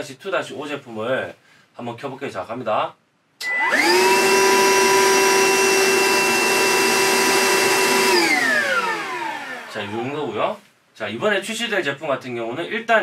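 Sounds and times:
vacuum motor whine: 3.4 - 10.3.

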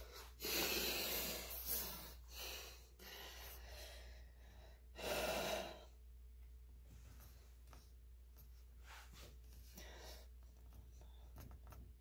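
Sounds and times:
faint rustling and handling: 6.7 - 12.0.

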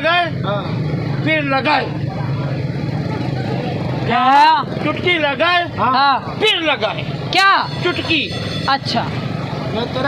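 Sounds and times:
street background noise: 0.0 - 10.0.

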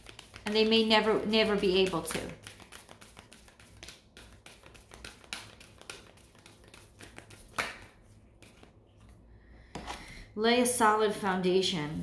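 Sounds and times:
cards being shuffled: 0.0 - 9.1.

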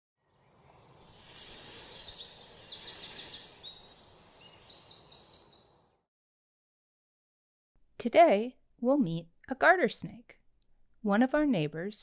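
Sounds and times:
birds singing: 0.4 - 6.0
high steady hiss: 0.7 - 4.8.

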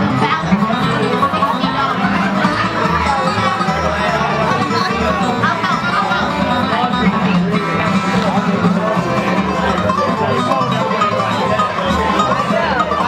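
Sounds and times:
acoustic guitars picking: 0.0 - 13.0
banjo: 0.0 - 13.0
upright bass: 0.0 - 13.0.

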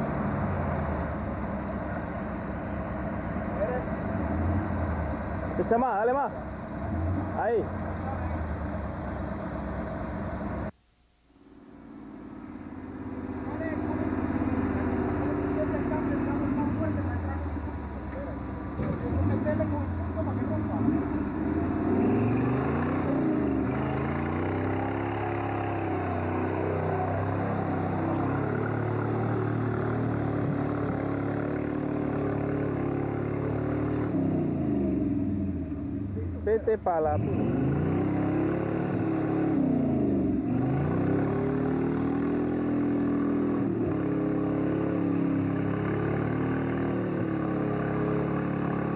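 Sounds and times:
off-road vehicle engine revving: 0.0 - 10.8, 11.8 - 48.9.

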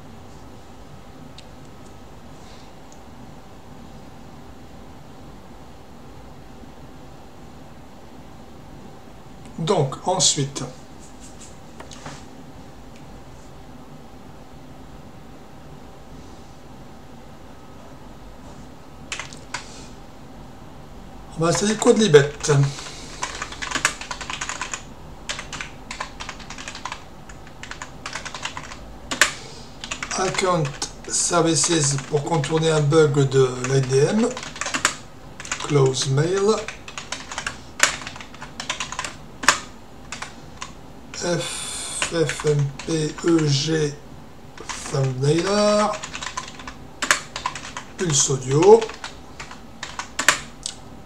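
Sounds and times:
computer keyboard typing: 19.1 - 19.7, 21.5 - 41.3, 42.0 - 43.6, 44.6 - 50.6.

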